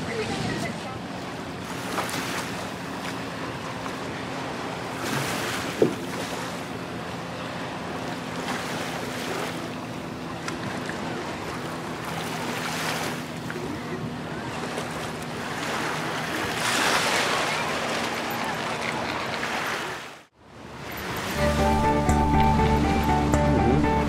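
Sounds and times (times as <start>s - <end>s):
boat engine humming: 0.0s - 24.0s.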